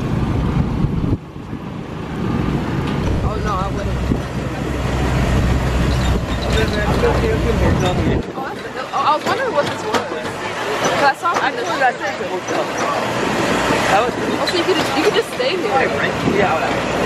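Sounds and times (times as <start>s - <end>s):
tram engine humming: 0.0s - 17.0s.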